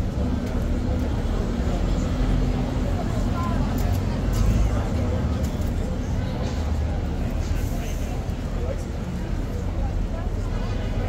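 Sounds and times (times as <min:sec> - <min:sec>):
city road traffic rumble: 0:00.0 - 0:11.0
faint voices of people: 0:00.0 - 0:11.0
vehicle engine hum: 0:00.0 - 0:11.0.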